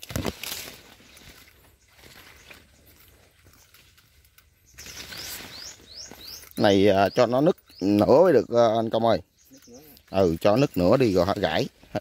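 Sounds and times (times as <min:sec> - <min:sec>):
faint outdoor ambience: 0:00.0 - 0:12.0
bird chirping: 0:00.8 - 0:12.0.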